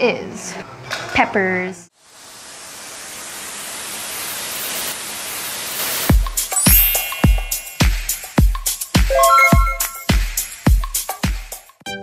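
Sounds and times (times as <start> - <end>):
white-noise riser hiss: 2.0 - 8.5.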